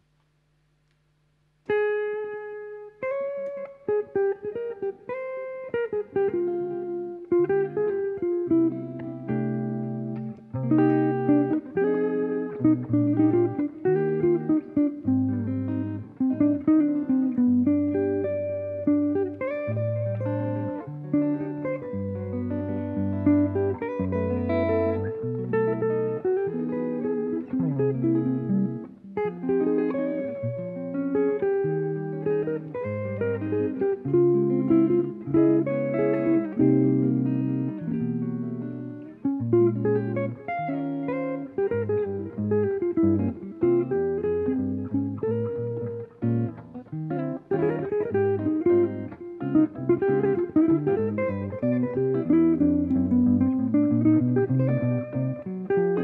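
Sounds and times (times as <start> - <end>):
guitar duo playing jazz: 1.6 - 56.0.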